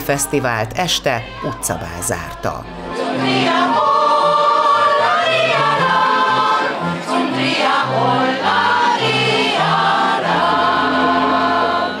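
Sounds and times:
accordion: 0.0 - 12.0
women's choir singing: 0.0 - 12.0.

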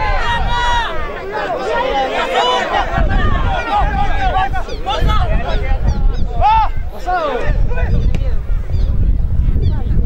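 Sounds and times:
wind rumble on microphone: 0.0 - 1.2, 2.6 - 10.0
people shouting and calling: 0.0 - 8.5.

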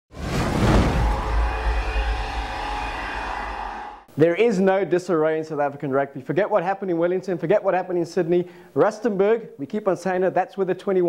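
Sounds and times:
whooshing tone: 0.1 - 4.1
deep low rumble: 0.2 - 4.0.

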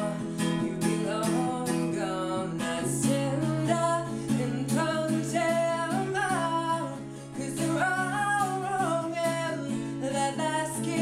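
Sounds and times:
acoustic guitar strumming: 0.0 - 11.0
man singing: 0.0 - 11.0.

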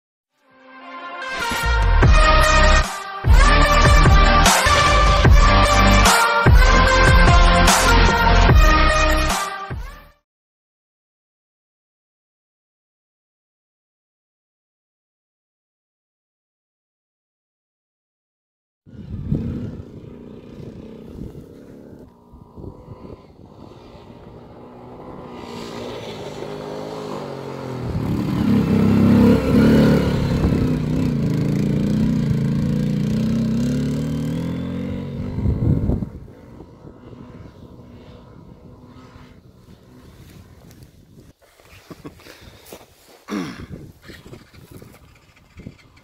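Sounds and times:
quad engine revving: 1.5 - 9.3, 18.9 - 41.3.

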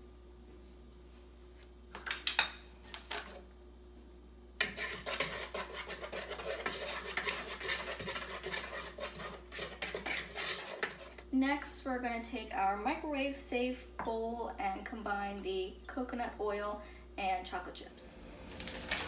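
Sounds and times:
whisk scraping plastic bowl: 4.6 - 11.3.

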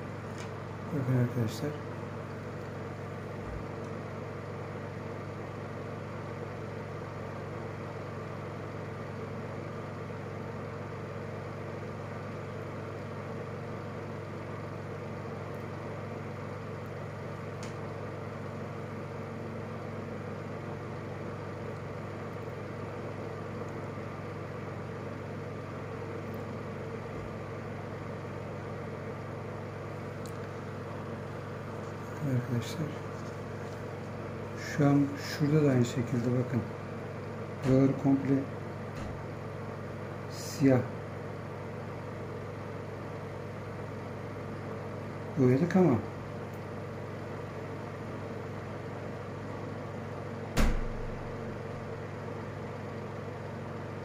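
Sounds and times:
steady mechanical hum: 0.0 - 54.0.

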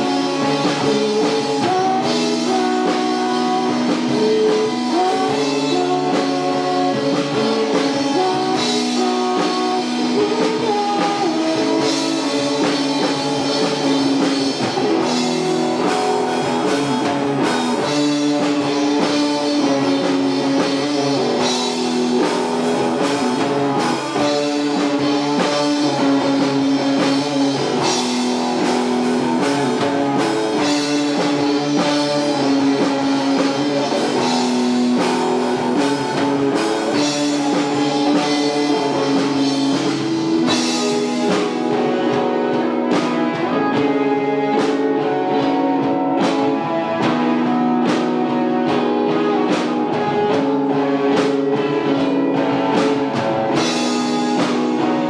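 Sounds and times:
drum kit: 0.0 - 55.0
electric guitars: 0.0 - 55.0.

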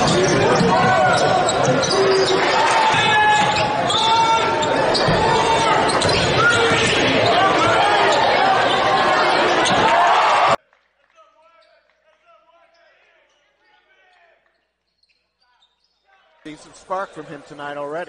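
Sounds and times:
crowd voices in a gym: 0.0 - 10.6, 15.2 - 18.0.

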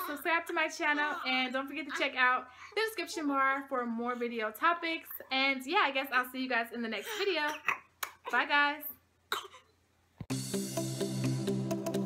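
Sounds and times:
instrumental music with ticking beat: 10.3 - 12.0.

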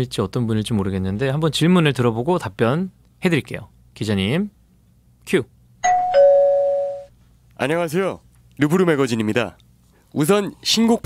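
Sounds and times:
two-note chime: 5.8 - 7.1.

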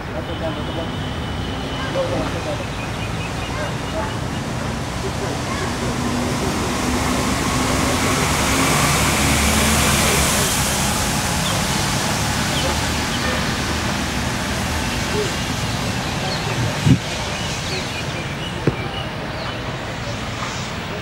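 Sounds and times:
indistinct voices: 0.0 - 21.0
low hum of road traffic: 0.0 - 21.0.

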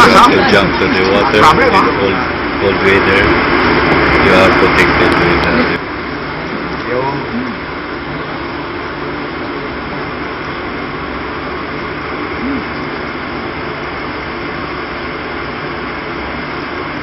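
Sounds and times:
ship machinery drone and hiss: 0.0 - 17.0.

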